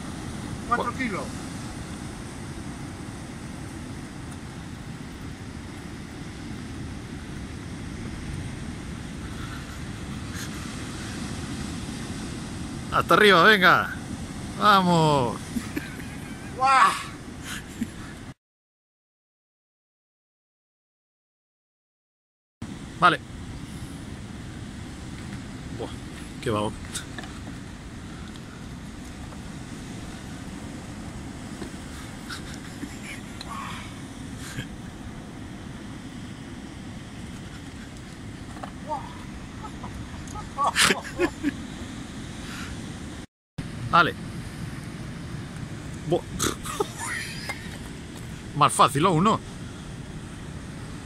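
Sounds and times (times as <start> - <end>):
ocean surf breaking on rocks: 0.0 - 18.3, 22.6 - 51.0
wind: 0.0 - 18.4, 22.6 - 51.0.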